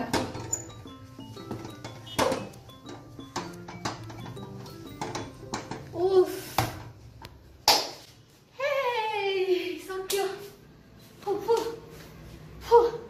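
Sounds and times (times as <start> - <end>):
background music: 0.0 - 6.6.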